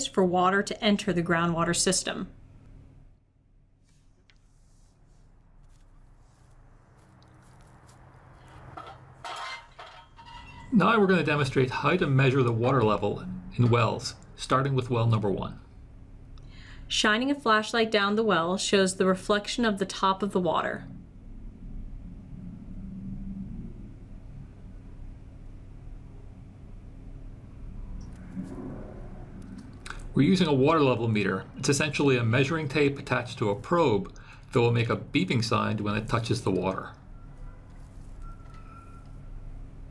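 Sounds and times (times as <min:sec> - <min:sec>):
faint outdoor hum: 0:00.0 - 0:39.9
low background rumble: 0:00.0 - 0:39.9
metal lid squeaking: 0:08.8 - 0:10.8, 0:37.2 - 0:39.3.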